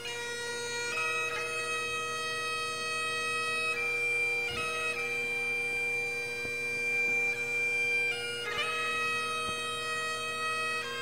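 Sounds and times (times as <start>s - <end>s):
bagpipe drone: 0.0s - 11.0s
bagpipe long held note: 0.0s - 11.0s.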